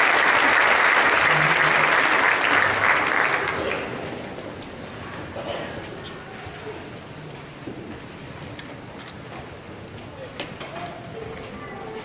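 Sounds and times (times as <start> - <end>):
audience rustling and murmur: 0.0 - 12.0.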